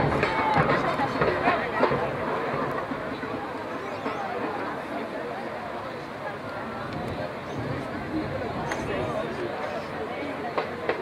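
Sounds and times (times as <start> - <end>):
babble of spectators' voices: 0.0 - 11.0.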